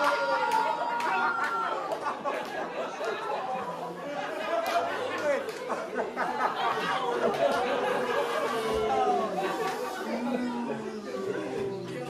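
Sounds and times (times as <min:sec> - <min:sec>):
indistinct chatter in a hall: 0:00.0 - 0:12.0.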